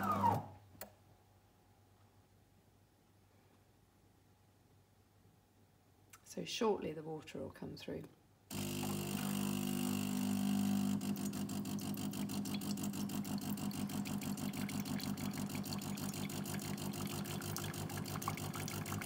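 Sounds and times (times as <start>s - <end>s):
coffee machine pump humming: 8.5s - 19.0s.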